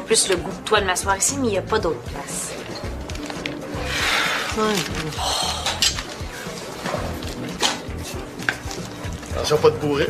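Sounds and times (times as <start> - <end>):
restaurant ambience: 0.0 - 10.0
soft background music: 0.0 - 10.0
dishes and cutlery clinking: 2.5 - 9.4.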